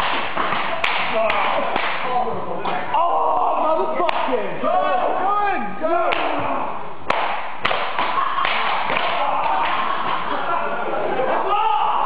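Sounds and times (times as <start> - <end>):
people shouting and whooping: 7.7 - 12.0.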